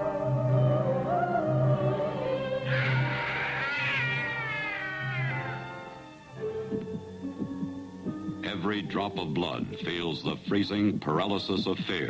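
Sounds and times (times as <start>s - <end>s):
cat yowling: 2.7s - 6.0s.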